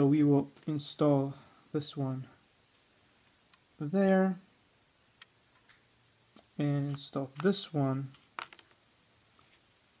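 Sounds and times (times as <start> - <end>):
small metal parts clinking: 6.8 - 8.8.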